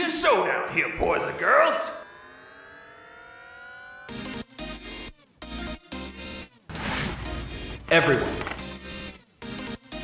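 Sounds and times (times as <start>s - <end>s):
rising synthesizer tone: 1.3s - 5.2s.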